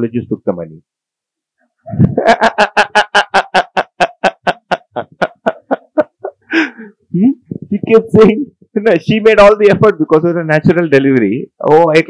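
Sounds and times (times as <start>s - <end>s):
hearty laughter: 1.9s - 7.0s.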